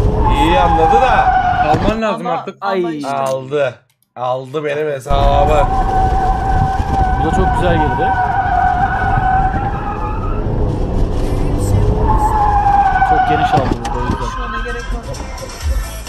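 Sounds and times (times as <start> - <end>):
car engine rumble: 0.0 - 2.0, 5.1 - 14.2
car tyres squealing: 0.0 - 2.1, 5.1 - 15.7.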